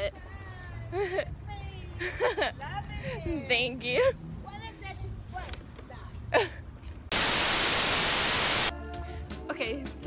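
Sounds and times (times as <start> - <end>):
white noise static hiss: 7.1 - 8.7
music: 8.7 - 10.0.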